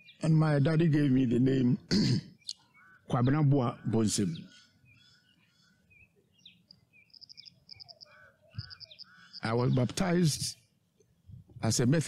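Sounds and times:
birds chirping faintly: 0:00.0 - 0:11.9
rapid high bird trills: 0:02.4 - 0:03.1, 0:03.7 - 0:09.9
lower bird notes: 0:02.4 - 0:10.1.

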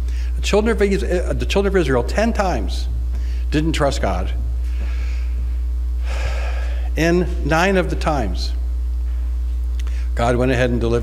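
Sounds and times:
low electrical hum: 0:00.0 - 0:11.0
man breathing into microphone: 0:03.1 - 0:03.5, 0:04.6 - 0:07.0, 0:09.8 - 0:10.2.

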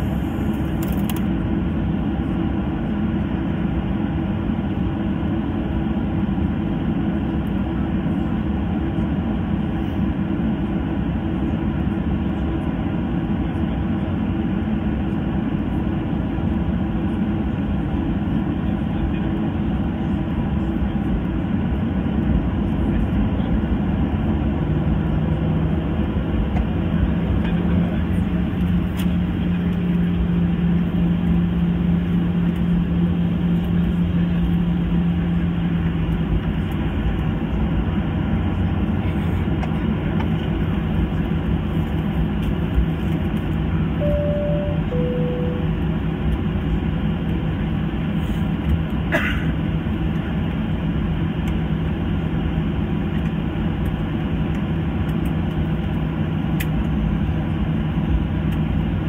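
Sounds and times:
jet engines humming: 0:00.0 - 0:59.0.

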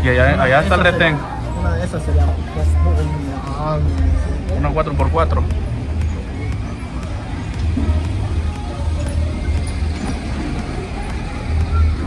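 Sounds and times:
jeep engine rumbling: 0:00.0 - 0:12.0.

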